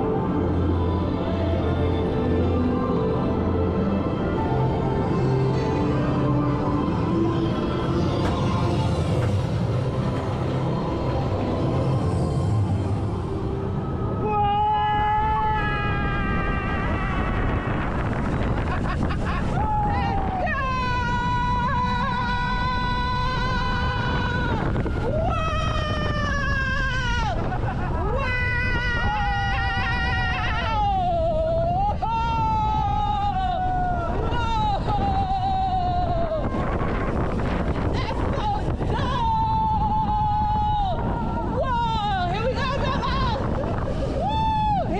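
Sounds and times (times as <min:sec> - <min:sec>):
roller coaster rushing on steel track: 0:07.7 - 0:44.9
rider screaming: 0:14.2 - 0:18.2.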